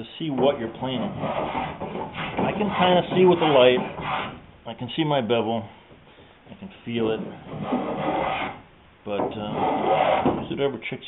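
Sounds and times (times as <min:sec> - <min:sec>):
block plane shaving wood: 0:00.3 - 0:04.4, 0:07.2 - 0:08.6, 0:09.2 - 0:10.4.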